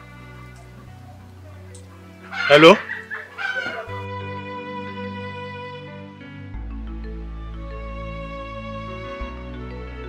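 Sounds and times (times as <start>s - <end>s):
film music sustained tones: 0.0s - 10.0s.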